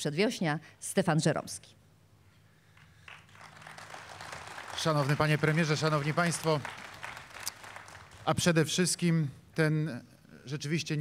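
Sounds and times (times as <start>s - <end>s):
audience applause: 3.0s - 8.6s.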